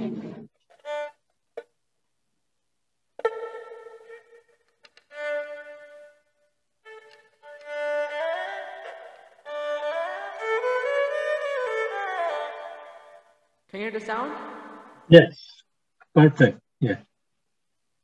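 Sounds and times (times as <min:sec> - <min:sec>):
bowed two-string fiddle melody: 0:00.8 - 0:01.2, 0:03.2 - 0:15.0.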